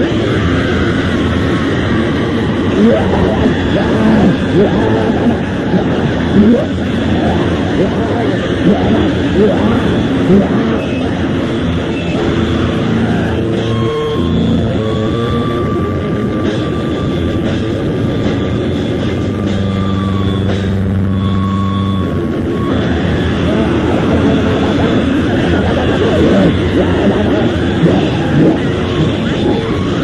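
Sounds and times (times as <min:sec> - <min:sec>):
distorted guitar drone: 0:00.0 - 0:30.0
high feedback whine: 0:00.0 - 0:30.0.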